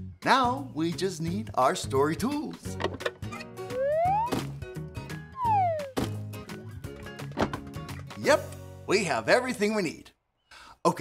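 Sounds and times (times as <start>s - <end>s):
background music with bass line: 2.7s - 8.2s
cartoon whistle rising with pop: 3.7s - 4.6s, 5.4s - 6.0s.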